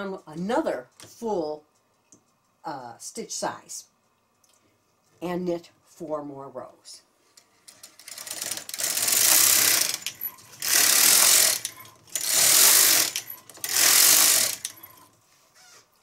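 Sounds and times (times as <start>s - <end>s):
knitting machine carriage clatter: 7.6s - 15.1s.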